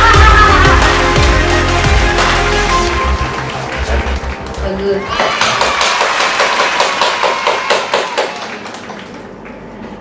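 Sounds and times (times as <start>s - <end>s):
rapid hand clapping: 5.2s - 9.6s.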